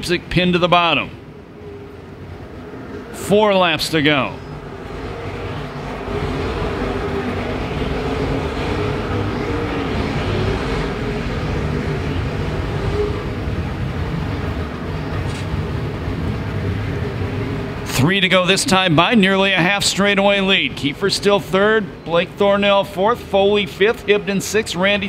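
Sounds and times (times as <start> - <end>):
race car engines: 0.0 - 25.0.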